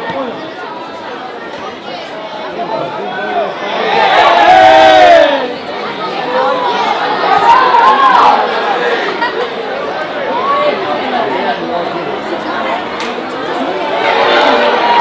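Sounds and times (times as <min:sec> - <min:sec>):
crowd talking and calling out: 0:00.0 - 0:15.0.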